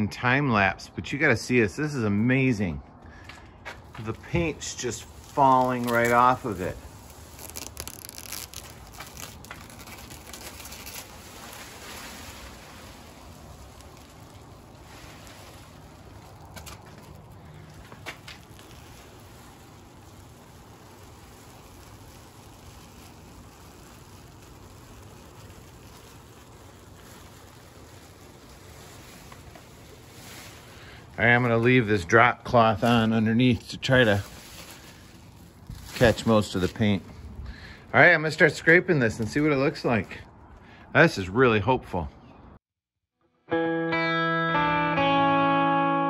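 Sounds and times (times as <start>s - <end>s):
plastic sheeting crinkling: 3.8s - 40.2s
paint flakes pattering on metal: 4.0s - 37.0s.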